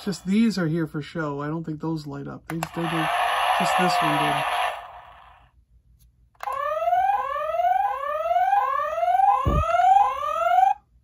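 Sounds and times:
toy siren whoop: 2.8 - 5.1, 6.4 - 10.9.

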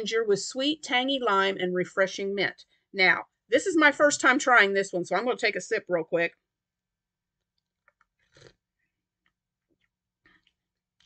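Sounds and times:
sipping and swallowing tea: 7.3 - 11.0.

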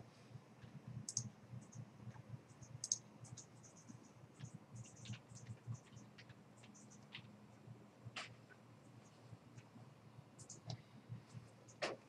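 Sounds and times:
low steady hum: 0.0 - 12.0
mouse and keyboard clicks: 1.0 - 7.3, 10.4 - 10.8.

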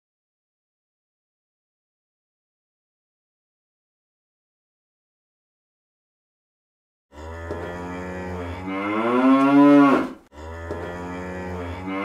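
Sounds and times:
cow mooing: 7.1 - 12.0.

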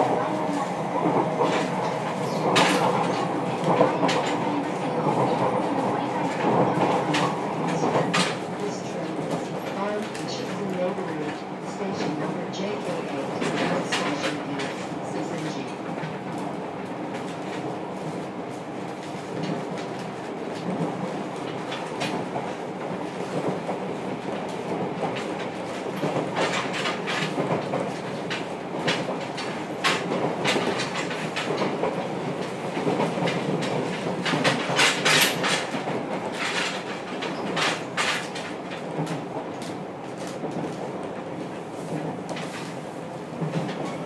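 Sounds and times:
rail joint clicks: 0.0 - 18.2, 18.8 - 44.0
train wheels rumbling on rail: 0.0 - 44.0.

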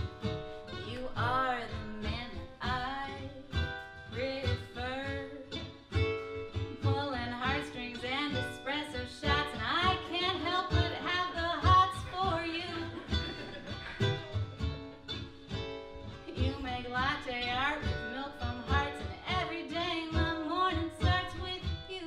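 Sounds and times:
ukulele strumming: 0.0 - 22.0
woman singing: 0.7 - 5.9, 6.6 - 14.4, 16.2 - 22.0.

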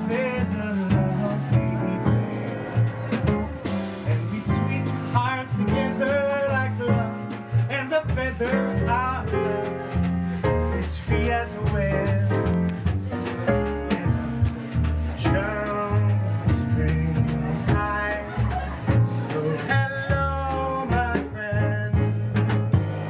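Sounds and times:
drums and cymbals: 0.0 - 23.0
piano: 0.0 - 23.0
plucked double bass: 0.0 - 23.0.

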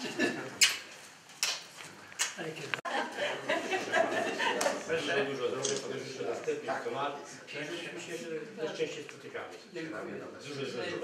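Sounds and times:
people talking indistinctly: 2.4 - 11.0.

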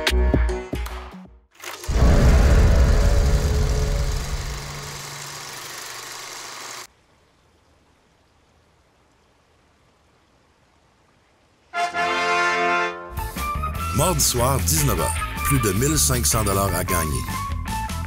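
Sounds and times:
rushing noise: 1.8 - 5.7
deep boom: 1.9 - 4.5.

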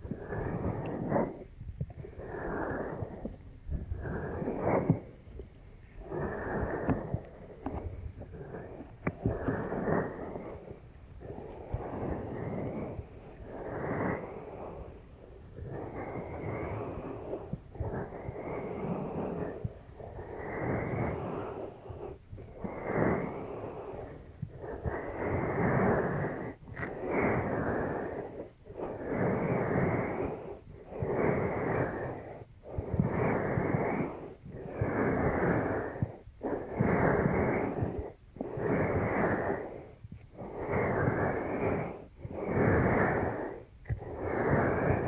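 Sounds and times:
hands cupping over microphone: 0.0 - 13.0.

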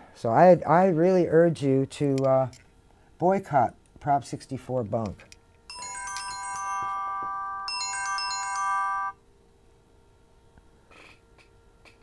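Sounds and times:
phone ringtone chiming melody: 5.7 - 9.2.

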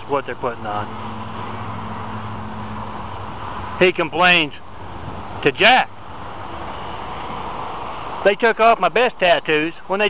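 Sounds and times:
road traffic rushing: 0.0 - 10.0.

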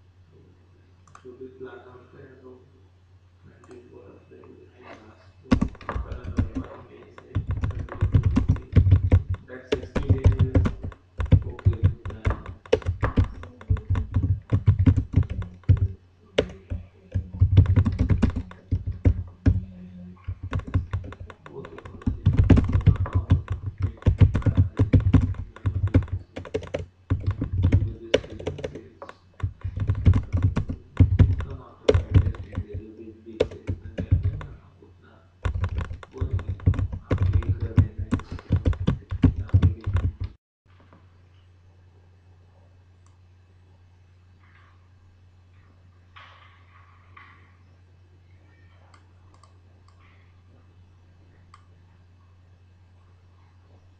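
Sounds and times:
typing on computer keyboard: 5.5 - 34.6, 35.4 - 40.4.

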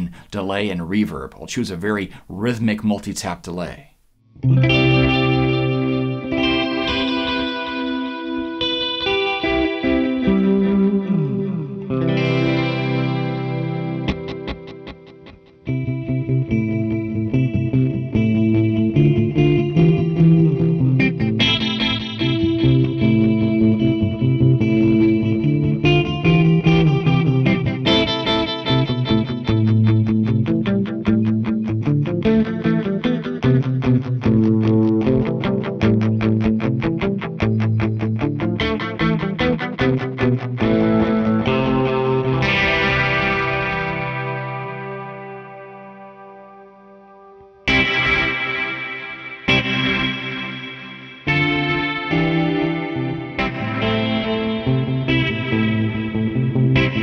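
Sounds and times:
electric guitar with delay echoes: 4.4 - 57.0.

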